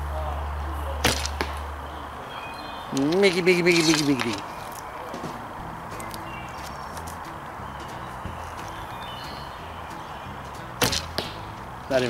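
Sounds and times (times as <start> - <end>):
bowstring snapping: 10.8 - 11.4.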